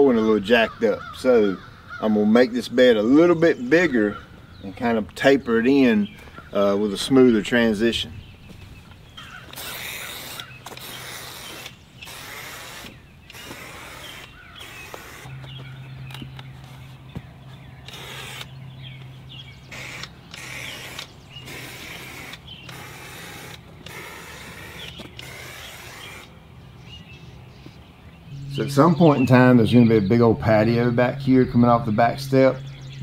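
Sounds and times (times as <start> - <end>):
steady low hum: 6.0 - 33.0
aerosol paint hissing: 9.5 - 15.3, 17.9 - 18.5, 19.7 - 26.3.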